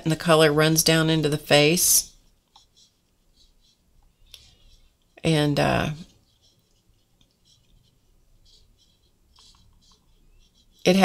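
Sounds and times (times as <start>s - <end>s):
paintbrush dabbing on paper: 0.2s - 11.0s.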